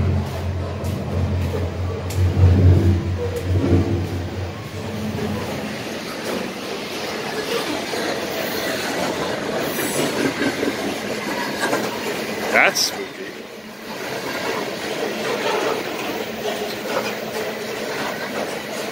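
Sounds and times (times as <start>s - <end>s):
freight train rumbling overhead: 0.0s - 18.9s.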